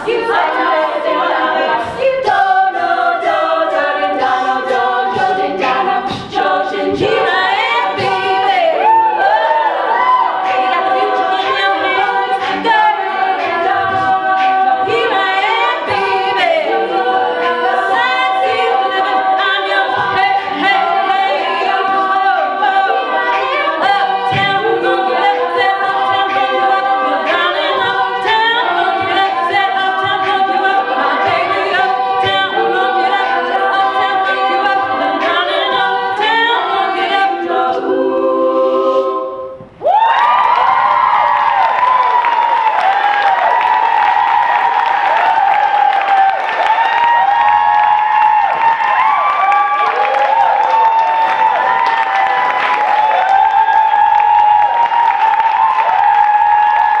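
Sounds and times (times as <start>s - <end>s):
crowd cheering and applause: 0.0s - 35.6s, 39.7s - 57.0s
female a cappella group singing: 0.0s - 57.0s.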